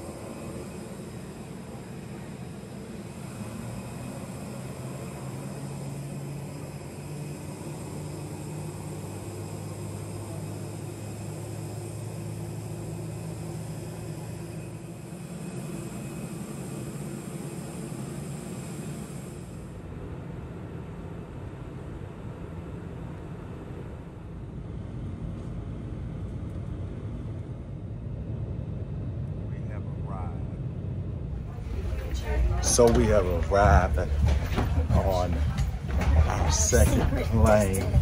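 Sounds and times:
jet airliner noise: 0.0 - 38.0.

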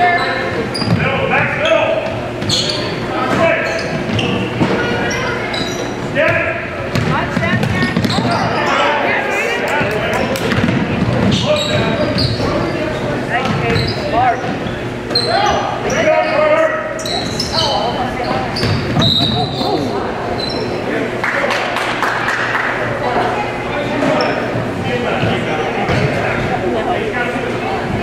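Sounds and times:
sneaker squeaks: 0.0 - 9.0, 10.2 - 21.1, 23.9 - 26.5
people shouting and chattering: 0.0 - 28.0
basketball bouncing on wooden floor: 6.3 - 8.5, 10.4 - 12.5, 13.4 - 14.6.

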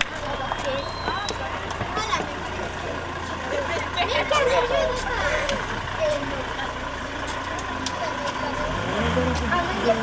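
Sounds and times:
car engine idling: 0.0 - 10.0
people talking: 0.0 - 10.0.

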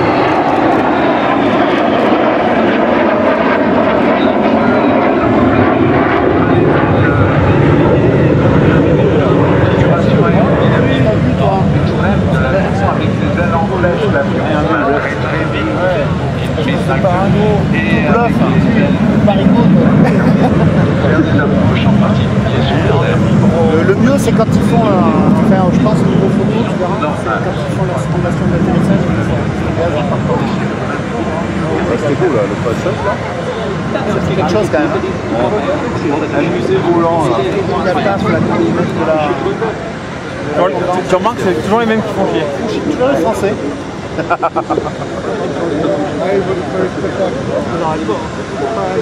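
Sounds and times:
bystanders talking: 0.0 - 49.0
jet engine rumble: 0.0 - 49.0.

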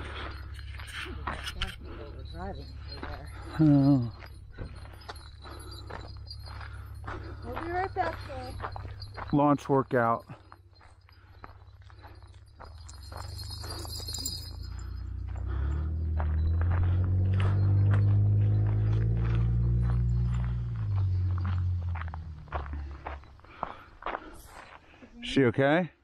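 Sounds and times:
footsteps on a road: 0.0 - 25.3
low humming rumble: 11.4 - 23.8.

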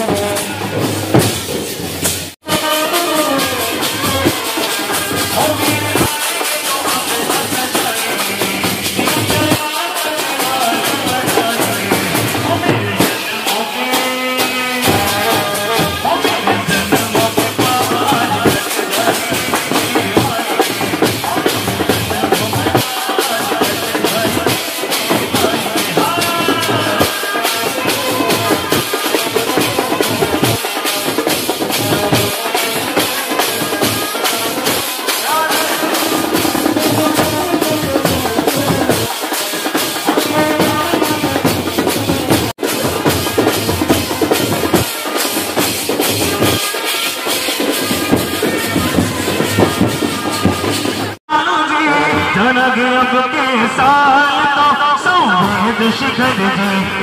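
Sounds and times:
driving drum beat: 0.0 - 57.0
procession band music: 0.0 - 57.0.

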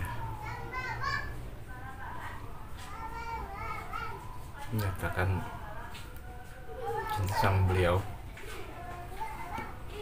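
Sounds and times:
children's voices: 0.0 - 4.6, 6.7 - 10.0.

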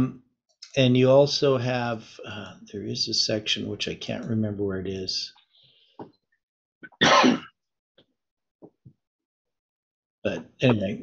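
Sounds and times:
person clearing throat: 6.9 - 7.5.

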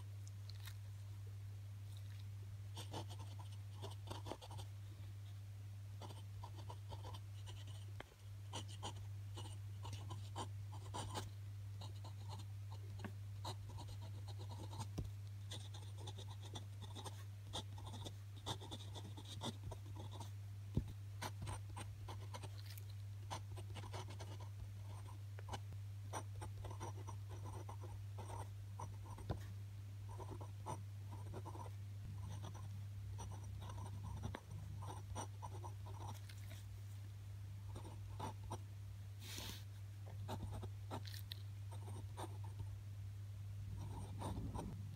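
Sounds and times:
steady low hum: 0.0 - 44.9
pen nib scratching on paper: 2.8 - 4.7, 6.0 - 29.5, 30.1 - 36.6, 37.7 - 38.6, 40.1 - 42.6, 43.8 - 44.8.

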